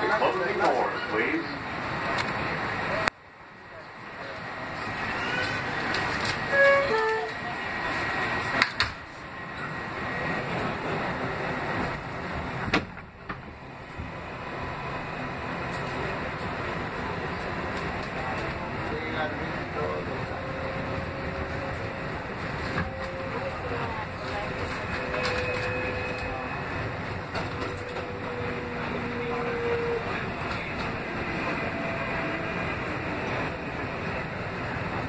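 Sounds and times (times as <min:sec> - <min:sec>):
subway car motors and wheels: 0:00.0 - 0:35.0.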